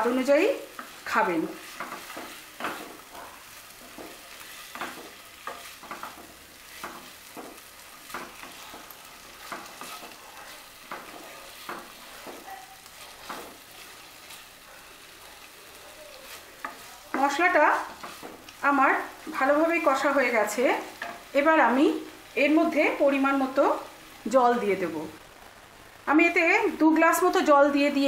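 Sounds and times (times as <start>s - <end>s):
oil sizzling: 0.0s - 28.0s
wooden spatula scraping a pan: 0.2s - 15.3s, 16.1s - 21.3s.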